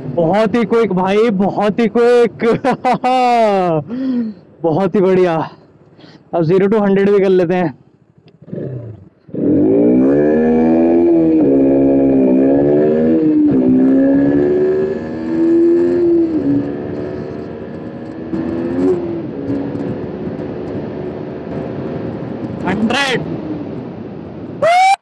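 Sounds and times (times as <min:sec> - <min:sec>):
motorcycle engine accelerating hard: 0:08.2 - 0:22.7.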